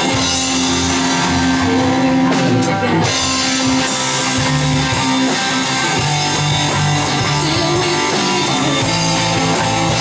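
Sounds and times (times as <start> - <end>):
drum kit with cymbal strokes: 0.0 - 10.0
electric bass: 0.0 - 10.0
electric guitar: 0.0 - 10.0.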